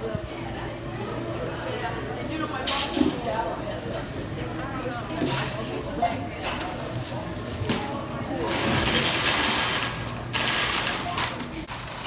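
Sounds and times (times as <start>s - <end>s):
shopping cart rattling: 8.4s - 12.0s.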